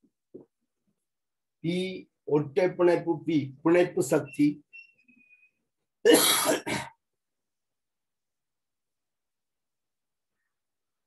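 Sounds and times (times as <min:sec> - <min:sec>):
man clearing his throat: 0:06.0 - 0:07.0.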